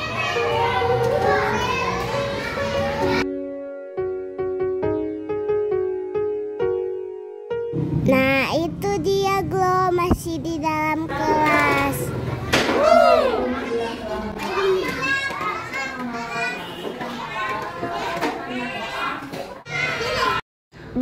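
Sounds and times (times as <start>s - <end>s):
children chattering and calling out: 0.0s - 3.3s, 8.2s - 20.4s.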